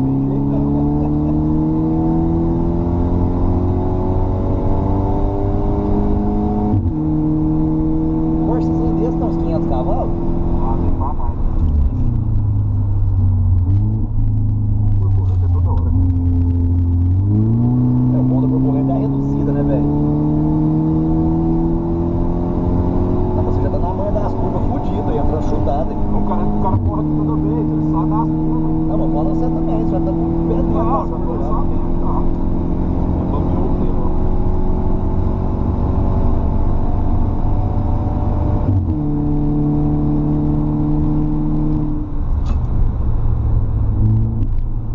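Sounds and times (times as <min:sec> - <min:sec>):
car engine revving: 0:00.0 - 0:44.9.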